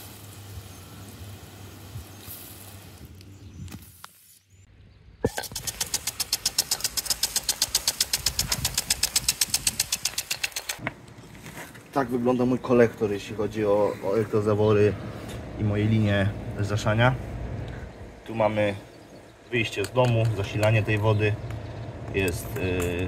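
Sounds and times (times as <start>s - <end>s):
lawn sprinklers spraying water: 0.0s - 4.3s, 5.3s - 10.8s.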